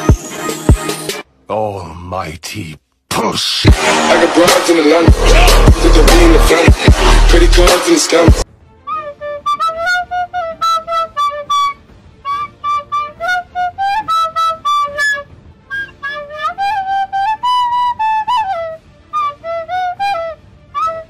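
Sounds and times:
flute-like wind instrument melody: 0:08.8 - 0:21.0.

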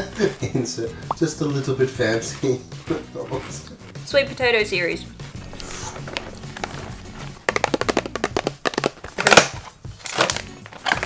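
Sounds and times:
background music: 0:00.0 - 0:11.0
cardboard ripping: 0:05.4 - 0:11.0
cardboard box clicking: 0:05.5 - 0:11.0.

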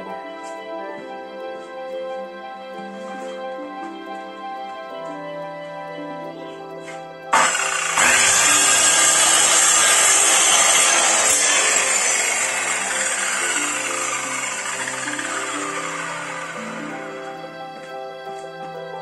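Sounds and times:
circular saw cutting wood: 0:06.9 - 0:18.5.

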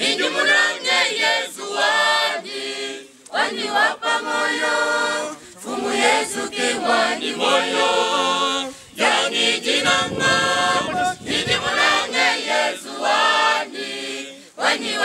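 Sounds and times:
choir singing: 0:00.0 - 0:15.0
singers breathing: 0:08.6 - 0:09.0, 0:14.4 - 0:14.6.

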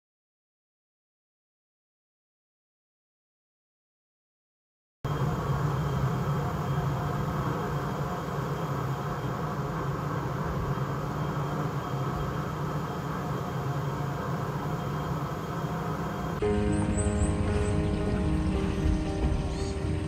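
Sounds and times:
steady low rumble: 0:05.1 - 0:20.0.

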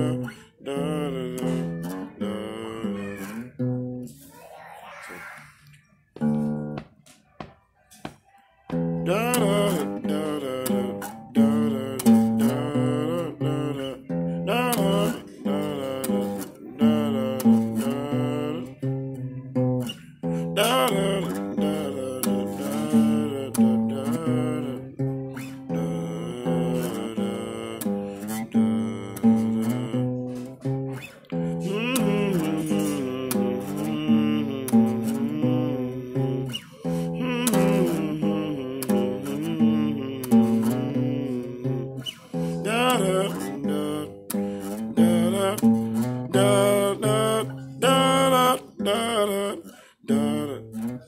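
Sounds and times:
man singing: 0:00.0 - 0:04.1, 0:08.7 - 0:51.0
acoustic guitar strumming: 0:00.0 - 0:04.2, 0:06.2 - 0:51.0.

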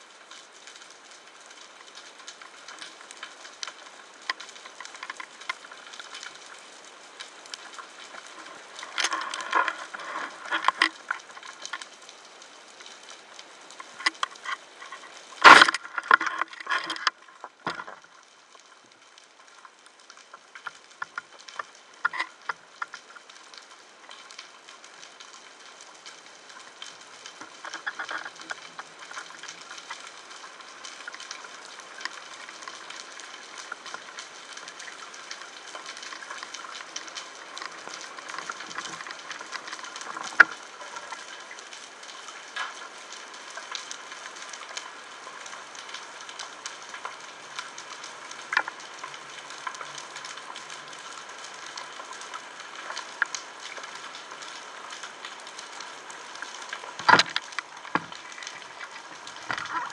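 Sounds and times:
underwater crackling snaps: 0:00.0 - 0:59.9.

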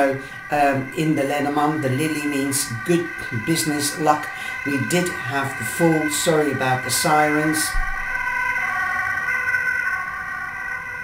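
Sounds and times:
sirens wailing: 0:00.0 - 0:11.0.

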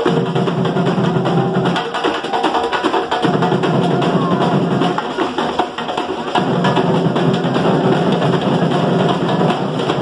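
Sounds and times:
percussion band drumming: 0:00.0 - 0:10.0.

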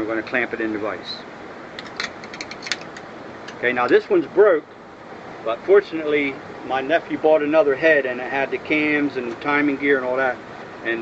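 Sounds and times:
metallic clicks and clinks: 0:01.8 - 0:03.0.

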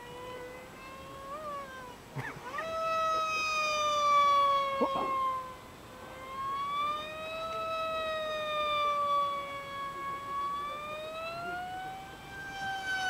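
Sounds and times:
model plane motor whine: 0:00.0 - 0:13.0.

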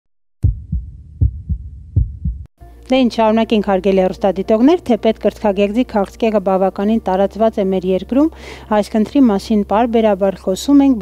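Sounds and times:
heartbeat thumps: 0:00.4 - 0:02.5.

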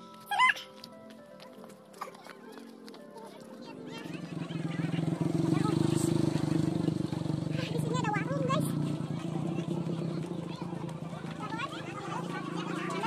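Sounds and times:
motorcycle engine running: 0:03.7 - 0:13.0.

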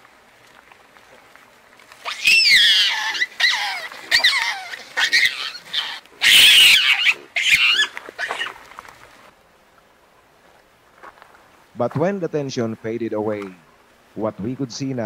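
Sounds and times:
baboons screaming: 0:02.0 - 0:08.6.

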